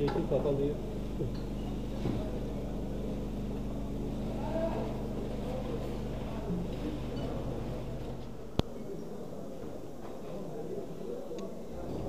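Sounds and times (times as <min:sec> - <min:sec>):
faint voices murmuring: 0:00.0 - 0:12.0
steady low hum: 0:00.0 - 0:12.0.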